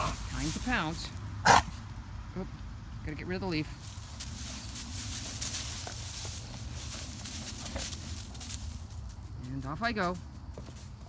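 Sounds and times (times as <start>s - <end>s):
dog paws scuffing ground: 0.0s - 1.9s, 3.7s - 11.0s
dry leaves rustling and crunching: 0.0s - 2.0s, 3.4s - 11.0s.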